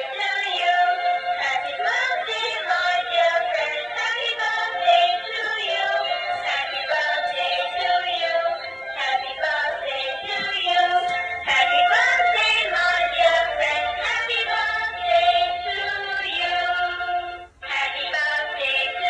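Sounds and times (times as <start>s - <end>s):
toy playing song with singing: 0.0s - 19.0s.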